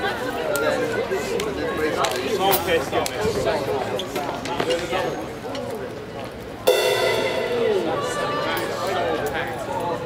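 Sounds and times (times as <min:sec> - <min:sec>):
guitar note sliding down: 0:06.7 - 0:08.6
electric guitar chord ringing: 0:06.7 - 0:08.7.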